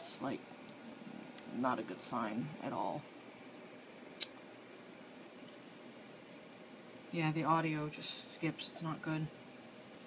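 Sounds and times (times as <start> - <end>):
faint room tone hiss: 0.0 - 10.0.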